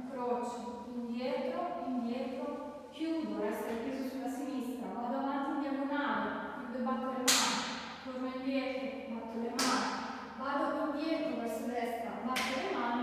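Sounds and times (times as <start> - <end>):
person speaking: 0.0 - 9.8
sharp cracks ringing in room: 7.2 - 8.1, 9.6 - 10.4.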